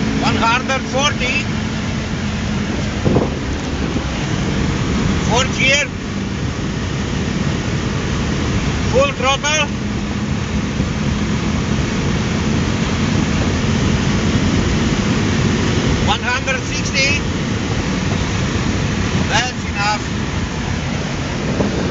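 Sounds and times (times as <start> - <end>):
car interior road roar: 0.0 - 21.9
low engine hum: 0.0 - 21.9.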